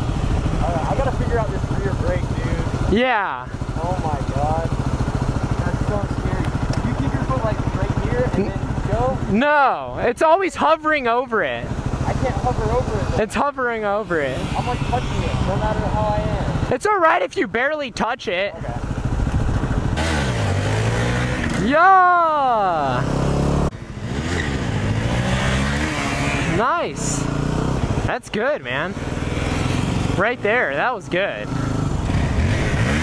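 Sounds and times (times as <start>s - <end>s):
motorcycle engine idling: 0.0s - 16.7s, 18.5s - 25.4s, 31.4s - 33.0s.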